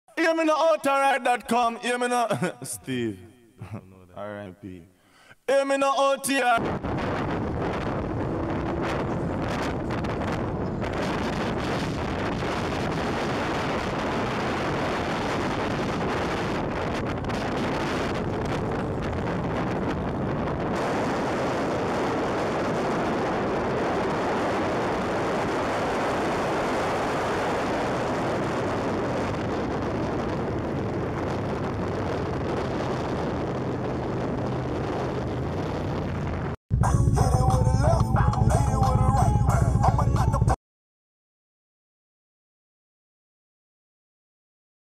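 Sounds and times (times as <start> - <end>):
wind rushing on microphone: 6.6 - 40.6
motorcycle engines and exhaust: 7.1 - 40.6.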